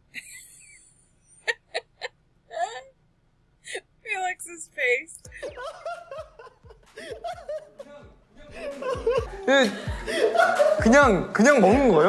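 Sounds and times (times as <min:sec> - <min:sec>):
bursts of laughter: 0:05.3 - 0:11.2.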